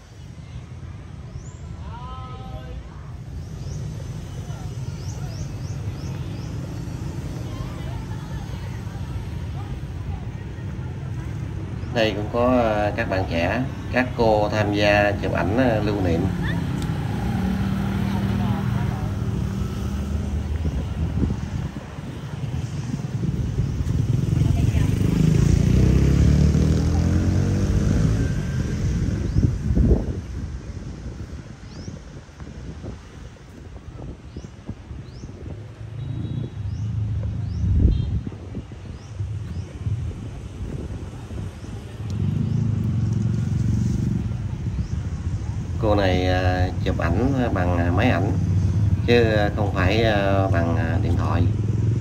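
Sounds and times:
motorbike engines running: 0:02.9 - 0:52.0
motorbike passing by loudly: 0:12.0 - 0:31.8, 0:35.8 - 0:52.0.

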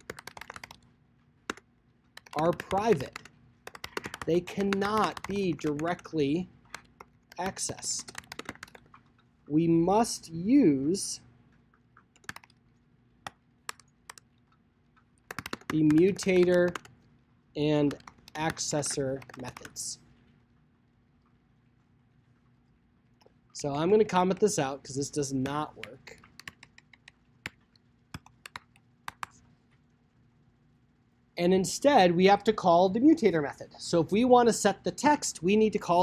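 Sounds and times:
computer keyboard keystrokes: 0:00.0 - 0:00.9, 0:01.5 - 0:09.3, 0:11.7 - 0:17.0, 0:17.8 - 0:19.8, 0:25.4 - 0:29.4.

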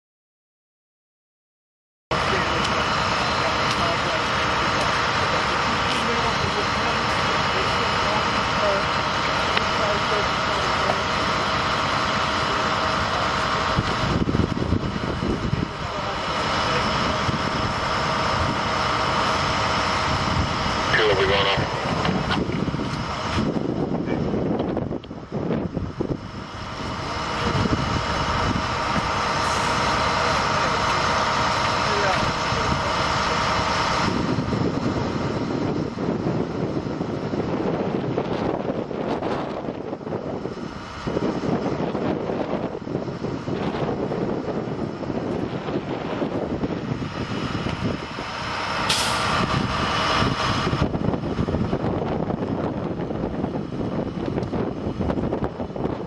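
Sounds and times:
vehicle engines idling: 0:02.1 - 0:56.0
indistinct voices: 0:14.9 - 0:22.5
short hiss: 0:48.9 - 0:49.3.

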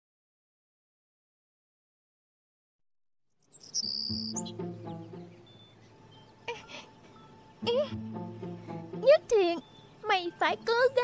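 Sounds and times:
birds chirping: 0:03.3 - 0:11.0
soft background music: 0:03.6 - 0:11.0.

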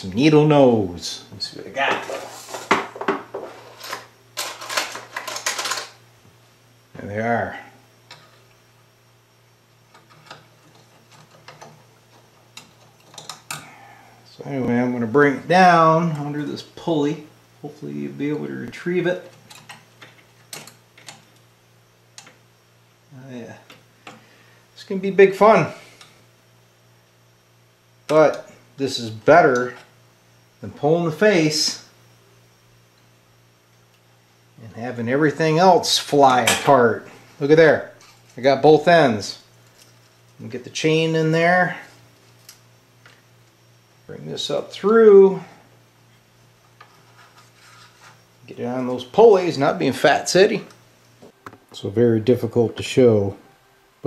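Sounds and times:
low steady hum: 0:00.0 - 0:54.0
soft rubbing of cord: 0:46.8 - 0:48.3.

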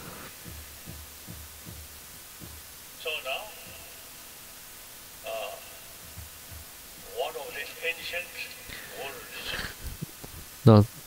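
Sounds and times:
soft low thuds: 0:00.0 - 0:05.2, 0:05.8 - 0:07.2
steady low hum: 0:00.0 - 0:11.0.

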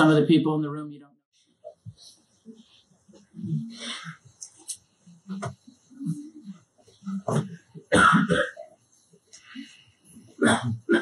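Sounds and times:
man clearing throat and coughing: 0:07.2 - 0:08.7, 0:10.4 - 0:11.0.

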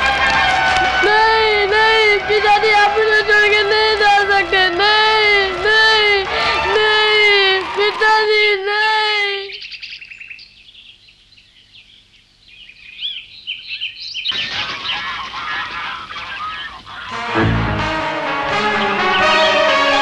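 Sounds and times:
cartoon birds chirping: 0:09.5 - 0:18.0
cartoon music: 0:14.4 - 0:20.0
long held musical note: 0:17.1 - 0:20.0
low boom: 0:17.2 - 0:18.3.

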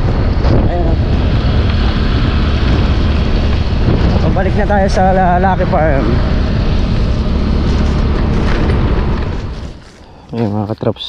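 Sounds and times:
motor scooter engine running: 0:00.0 - 0:10.0
wind on microphone: 0:00.0 - 0:10.0.

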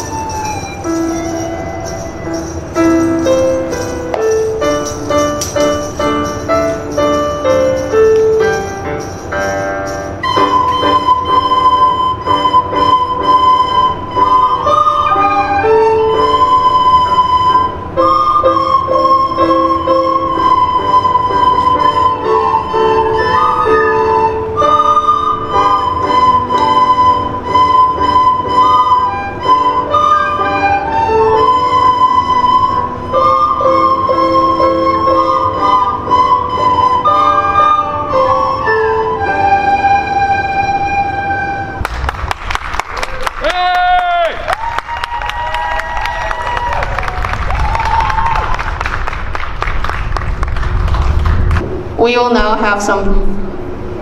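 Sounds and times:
children playing recorders: 0:00.0 - 0:03.4, 0:10.2 - 0:41.9.

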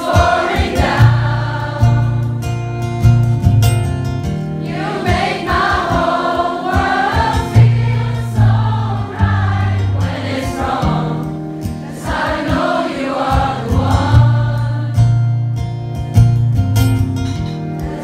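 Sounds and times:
audience singing together: 0:00.0 - 0:02.8, 0:04.6 - 0:15.4, 0:17.6 - 0:18.0
strummed acoustic guitar: 0:00.0 - 0:18.0.

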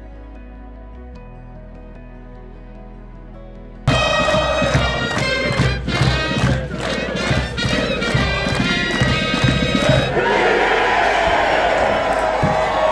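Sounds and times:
crowd cheering and shouting: 0:03.9 - 0:12.9
music with pounding beat: 0:03.9 - 0:12.9.

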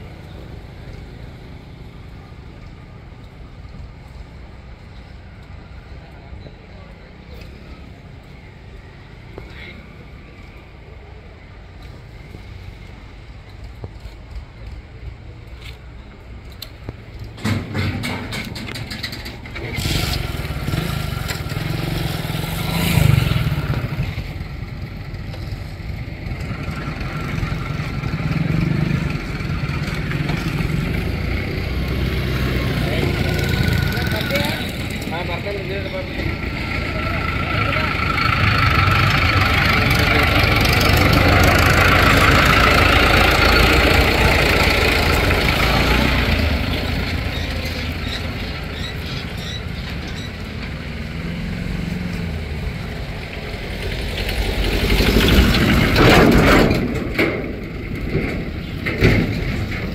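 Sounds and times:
express train passing: 0:17.9 - 0:59.9
people's voices: 0:26.1 - 0:53.4.

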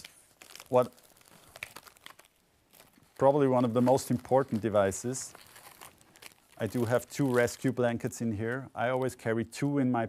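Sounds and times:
packaged items rustling and crinkling: 0:00.0 - 0:09.3.

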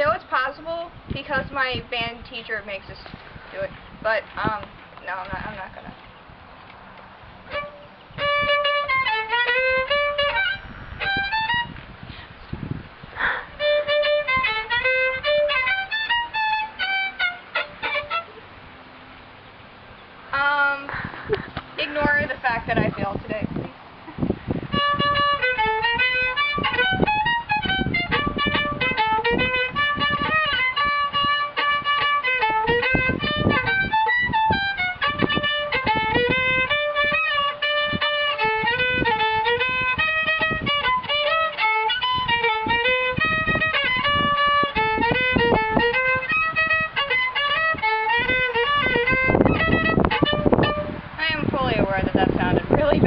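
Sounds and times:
solo violin brisk melody: 0:00.0 - 0:19.7, 0:20.4 - 0:53.0
person speaking: 0:20.3 - 0:23.7.

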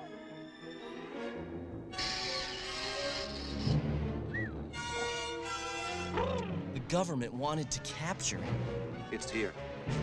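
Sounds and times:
suspenseful film score: 0:00.0 - 0:10.0.

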